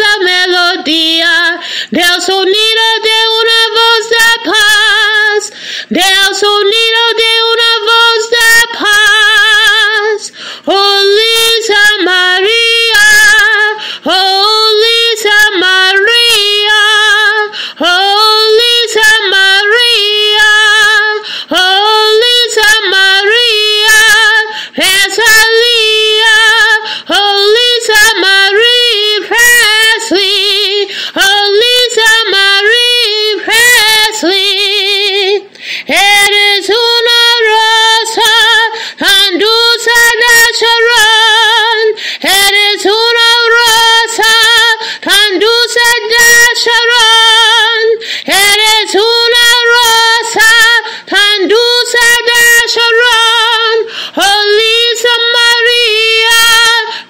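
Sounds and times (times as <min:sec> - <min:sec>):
woman singing unaccompanied: 0:00.0 - 0:57.0.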